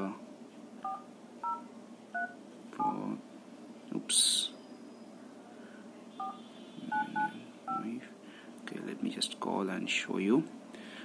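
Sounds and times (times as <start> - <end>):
phone keypad touch tones: 0.8 - 3.0, 6.2 - 7.9.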